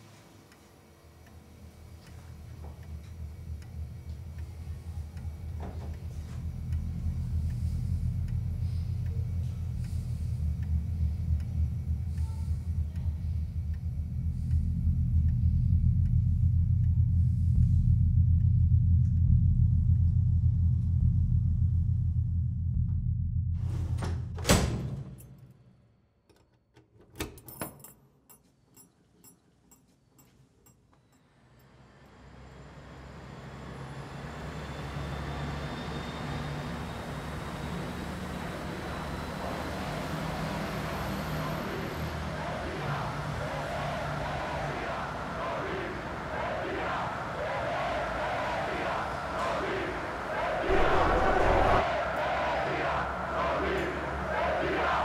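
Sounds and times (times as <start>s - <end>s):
traffic: 1.4s - 18.2s, 31.4s - 55.0s
deep low rumbling drone: 2.2s - 24.3s, 37.9s - 54.3s
key turning in door lock: 26.7s - 28.0s.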